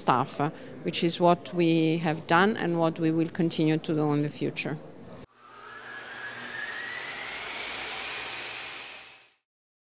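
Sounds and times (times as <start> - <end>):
jet engine rush and whine: 5.4 - 9.4.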